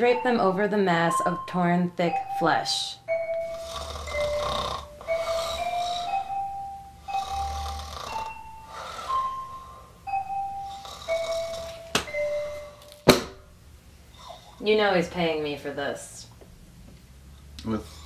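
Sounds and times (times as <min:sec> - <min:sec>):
soft slow melody: 0:00.0 - 0:13.5
person snoring: 0:03.4 - 0:06.4, 0:07.0 - 0:10.0, 0:10.6 - 0:11.8.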